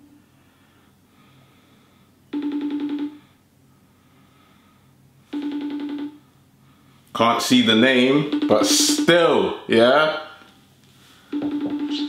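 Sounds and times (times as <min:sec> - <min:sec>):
phone ringback tone: 0:02.3 - 0:03.3, 0:05.3 - 0:06.2, 0:08.2 - 0:09.2, 0:11.3 - 0:12.0.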